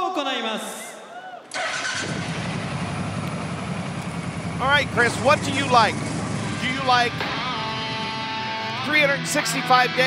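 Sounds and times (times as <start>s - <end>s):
entrance music over sound system: 4.4s - 10.0s.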